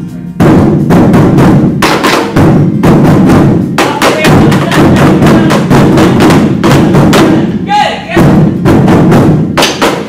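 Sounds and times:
taiko drums beating: 0:00.4 - 0:10.0
person calling out: 0:07.6 - 0:08.2.

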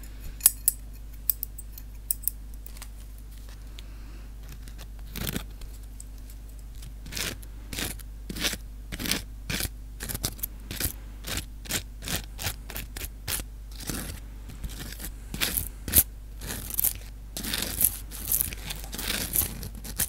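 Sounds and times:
faint low hum: 0:00.0 - 0:20.0
close scrapes and crackles: 0:00.5 - 0:20.0.

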